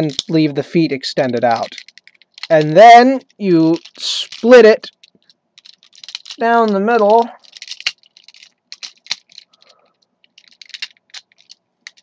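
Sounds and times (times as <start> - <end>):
plastic toy parts clicking: 0.0 - 0.4, 1.4 - 12.0.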